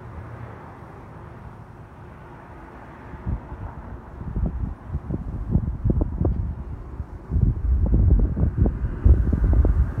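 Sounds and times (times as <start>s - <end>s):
wind buffeting microphone: 3.1s - 10.0s.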